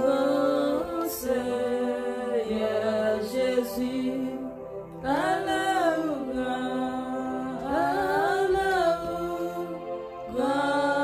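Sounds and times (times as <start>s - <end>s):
woman singing worship song: 0.0s - 11.0s.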